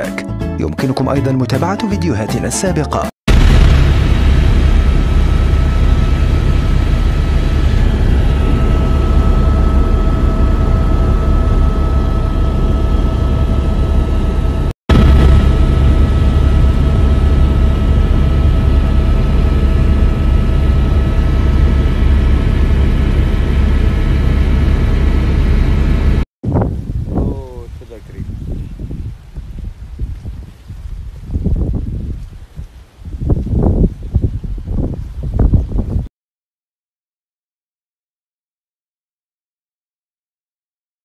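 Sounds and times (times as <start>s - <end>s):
constant whine: 3.3s - 26.2s
helicopter drone inside cabin: 3.4s - 26.2s.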